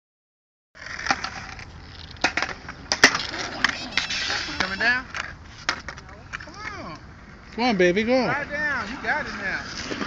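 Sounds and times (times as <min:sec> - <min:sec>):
skateboards clacking on concrete: 0:00.8 - 0:10.0.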